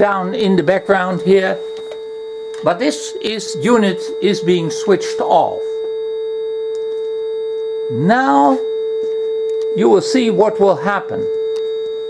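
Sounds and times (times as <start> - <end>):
steady sine test tone: 0.0 - 12.0.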